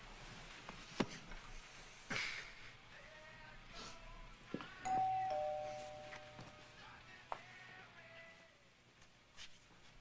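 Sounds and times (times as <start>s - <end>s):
two-tone doorbell chime: 4.9s - 6.7s.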